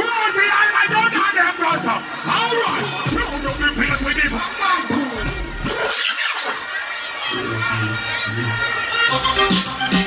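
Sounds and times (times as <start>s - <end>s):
crowd screaming: 0.0s - 10.0s.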